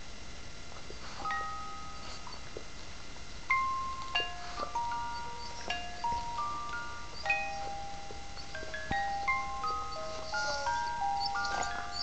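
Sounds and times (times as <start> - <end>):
musical doll lullaby chimes: 1.2 - 2.4, 3.5 - 12.0.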